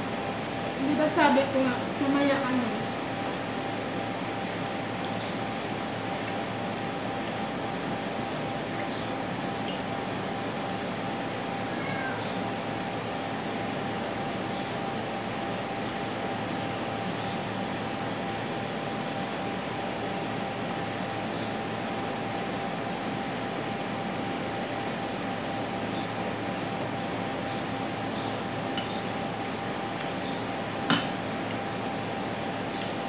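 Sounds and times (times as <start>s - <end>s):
faint constant hum: 0.0s - 33.0s.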